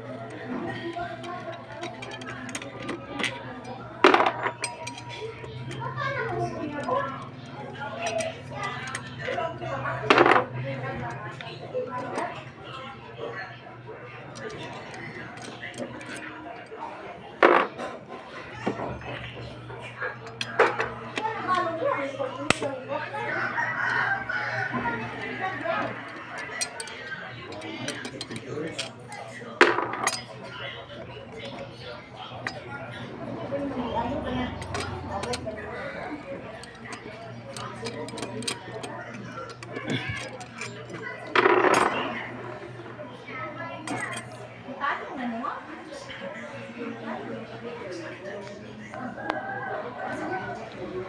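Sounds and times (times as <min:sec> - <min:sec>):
people talking: 0:00.0 - 0:51.0
metal tool clicking: 0:25.8 - 0:30.3, 0:34.6 - 0:35.6, 0:36.5 - 0:41.1, 0:43.9 - 0:44.3.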